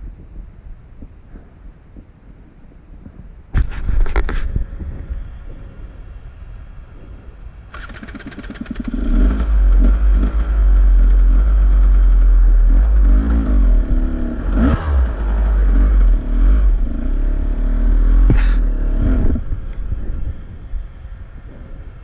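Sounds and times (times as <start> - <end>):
dirt bike engine revving: 7.7 - 20.3.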